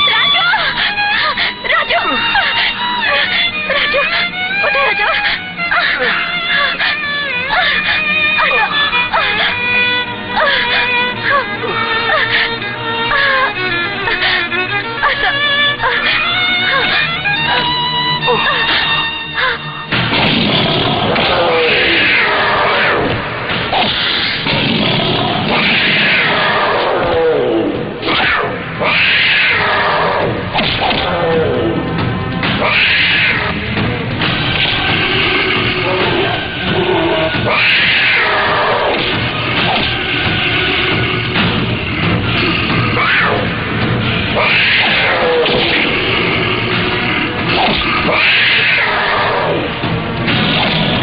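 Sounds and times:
dramatic film score: 0:00.0 - 0:51.0
bear roaring: 0:20.4 - 0:33.7, 0:34.6 - 0:40.0, 0:42.0 - 0:51.0.

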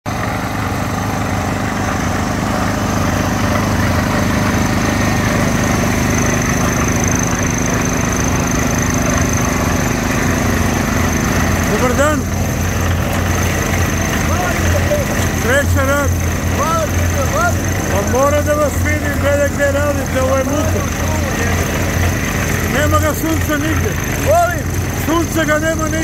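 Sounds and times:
construction machinery engine hum: 0:00.1 - 0:26.0.

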